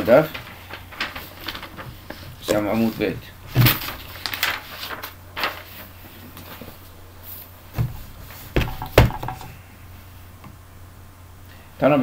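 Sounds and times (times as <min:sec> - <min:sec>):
paper rustling: 0:00.0 - 0:09.1
low steady hum: 0:00.0 - 0:12.0
book knocking on desk: 0:07.7 - 0:09.5.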